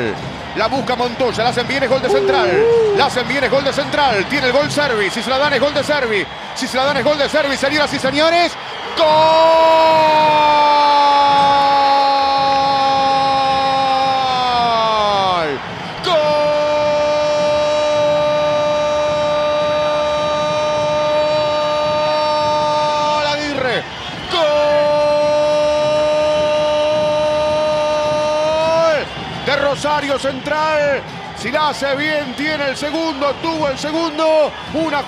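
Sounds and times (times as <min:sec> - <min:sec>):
sportscaster crying goal: 0:02.0 - 0:03.2.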